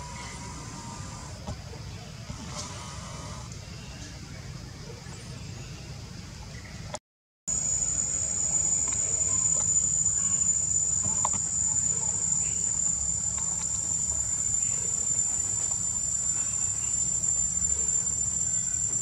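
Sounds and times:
high-pitched insect drone: 0:00.0 - 0:01.6, 0:07.5 - 0:19.0.

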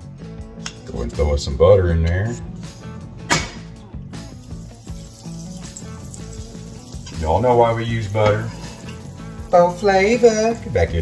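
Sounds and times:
background music: 0:00.0 - 0:11.0
butter sizzling in a frying pan: 0:03.6 - 0:11.0.

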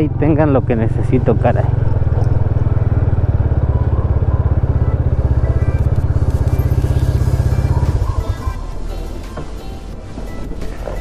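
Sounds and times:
motorcycle engine at low revs: 0:00.0 - 0:09.6.

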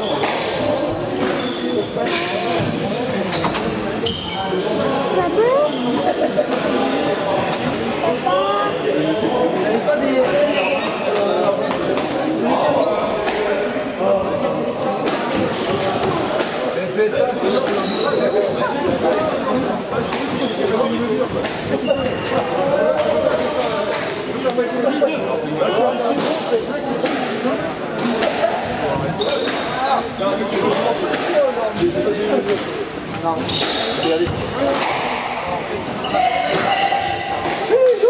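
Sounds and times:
indistinct chatter of voices: 0:00.0 - 0:38.0
squash racket hitting ball: 0:21.3 - 0:21.8, 0:30.7 - 0:31.9.

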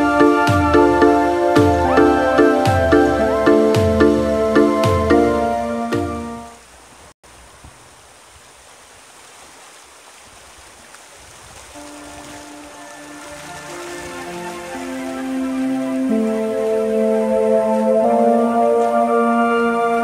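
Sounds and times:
background music: 0:00.0 - 0:06.6, 0:11.8 - 0:20.0
river water rushing over rocks: 0:08.1 - 0:20.0.

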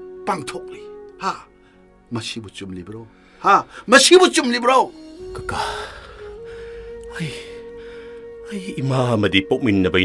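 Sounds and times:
soft background music: 0:00.0 - 0:10.0
breathy gasp: 0:05.5 - 0:08.4.

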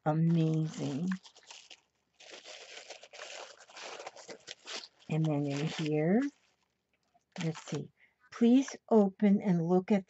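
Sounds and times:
packaging crinkling and rustling: 0:00.2 - 0:07.8.

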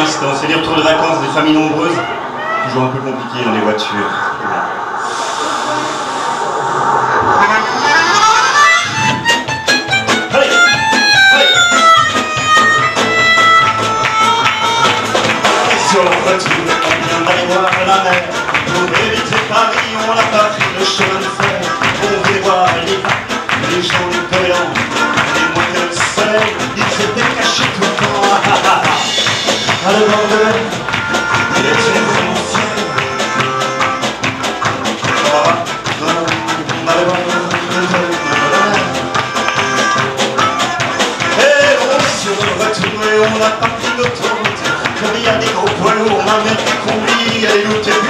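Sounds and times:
double bass: 0:07.2 - 0:48.0
melodica melody: 0:08.0 - 0:18.9, 0:20.8 - 0:28.3, 0:29.0 - 0:42.4
person shouting: 0:31.4 - 0:33.2.

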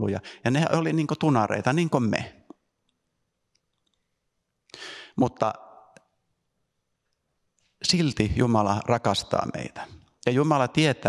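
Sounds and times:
sharp intake of breath: 0:04.7 - 0:05.2.

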